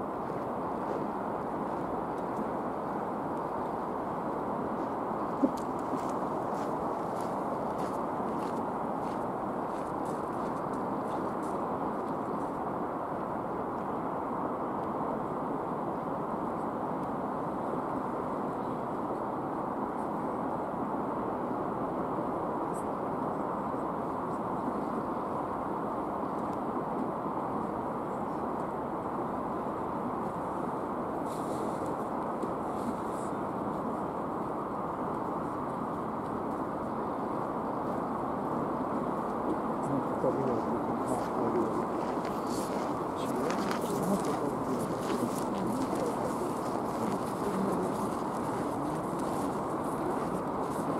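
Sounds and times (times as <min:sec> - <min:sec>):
steady rushing noise: 0:00.0 - 0:18.4, 0:23.9 - 0:50.9.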